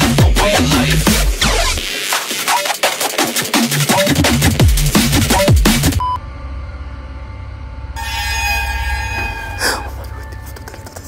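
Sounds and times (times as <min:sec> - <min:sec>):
low steady hum: 0:06.0 - 0:11.0
thin high screeching tones: 0:08.0 - 0:10.1.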